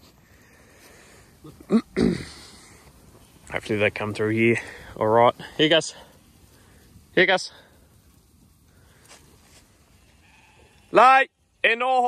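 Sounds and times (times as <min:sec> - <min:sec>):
sheep bleating: 0:10.1 - 0:11.1.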